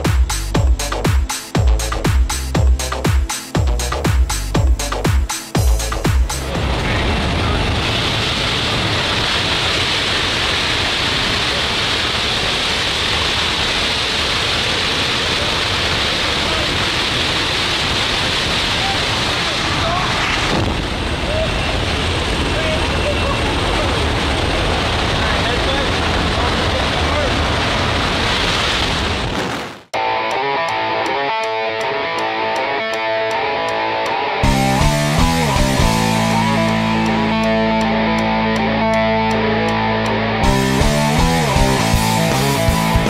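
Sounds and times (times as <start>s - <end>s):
wind roaring: 6.4s - 29.9s
propeller engine: 20.9s - 27.2s, 34.4s - 43.0s.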